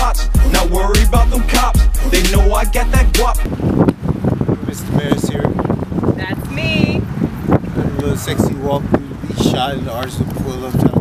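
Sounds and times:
wind buffeting microphone: 2.3 - 11.0.

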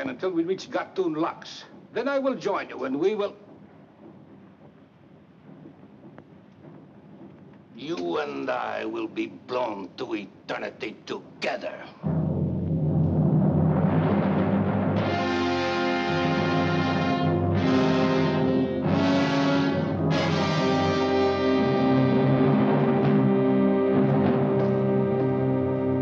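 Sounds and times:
low drum roll: 0.0 - 10.5, 12.0 - 26.0
brass chords: 12.1 - 26.0.

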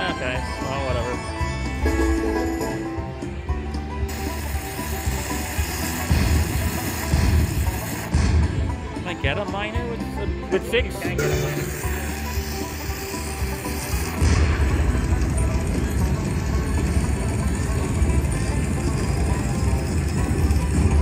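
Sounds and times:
slot machine music: 0.0 - 8.2, 10.9 - 21.0.

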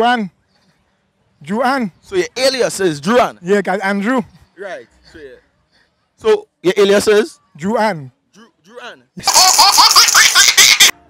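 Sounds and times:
hearty laughter: 9.2 - 11.0.

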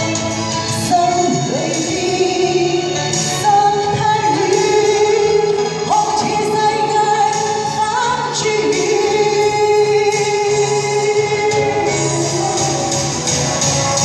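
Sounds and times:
woman singing a ballad: 0.0 - 12.8.

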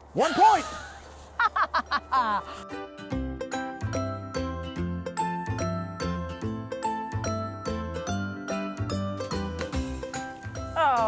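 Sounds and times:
person laughing: 0.4 - 2.7
background music with bass: 2.0 - 11.0.

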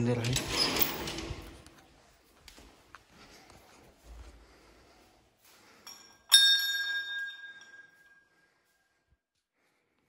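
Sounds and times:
brass bell ringing: 5.9 - 8.2.

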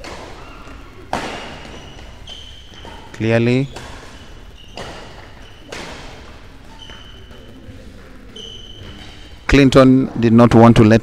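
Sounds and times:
racket hitting shuttlecock: 0.0 - 9.2
short high squeaks: 1.5 - 5.9, 6.6 - 7.6, 8.3 - 9.4.

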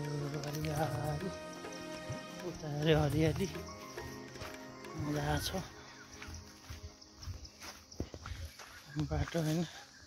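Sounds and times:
footsteps on a path: 0.0 - 10.0.

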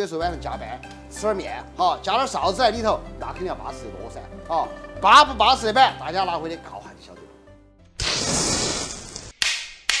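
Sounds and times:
sharp cracks: 8.0 - 10.0.

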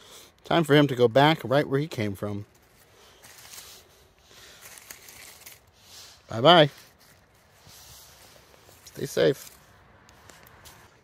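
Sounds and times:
road traffic hiss: 0.0 - 0.8, 1.9 - 11.0
rustling of bark and leaf litter: 0.0 - 11.0.

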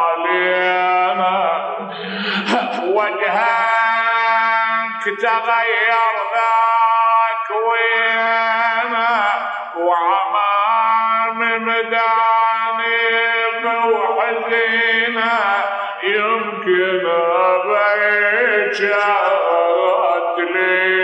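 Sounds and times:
man chanting mournful elegy: 0.0 - 21.0.

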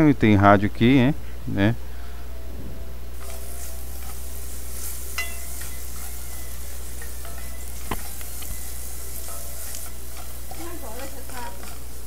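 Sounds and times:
garlic sizzling in oil: 3.1 - 12.0
wooden spoon stirring: 3.3 - 12.0.

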